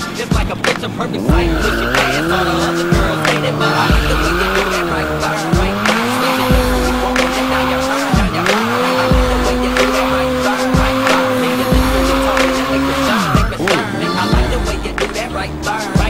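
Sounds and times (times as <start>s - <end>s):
hip-hop music with beat: 0.0s - 16.0s
motorcycle engine revving high: 0.0s - 16.0s
tyre squeal and skidding: 0.0s - 16.0s.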